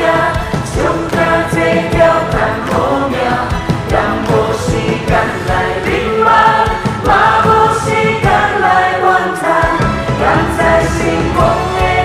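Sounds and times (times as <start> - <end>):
amplified backing music with beat: 0.0 - 12.0
group of people singing: 0.0 - 12.0.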